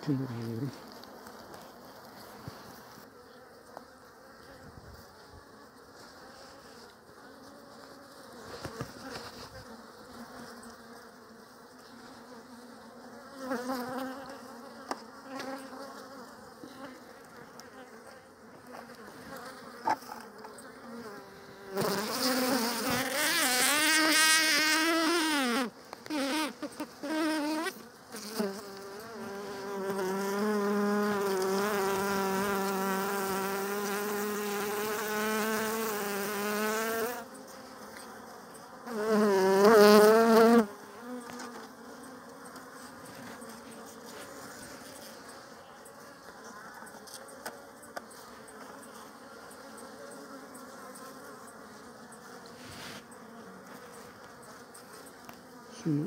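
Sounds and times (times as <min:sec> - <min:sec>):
bee buzzing close to microphone: 0:00.0 - 0:56.0
honeybees buzzing: 0:00.0 - 0:56.0.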